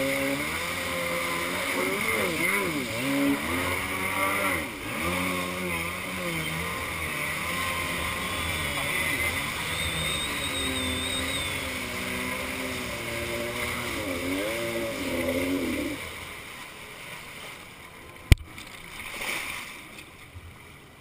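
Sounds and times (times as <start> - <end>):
jet ski engine running: 0.0 - 19.1.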